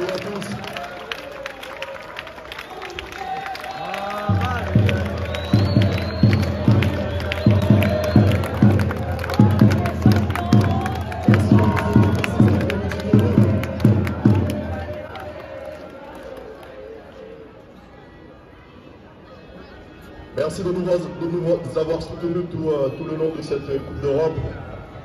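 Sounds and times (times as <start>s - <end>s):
crowd cheering and shouting: 0.0s - 25.0s.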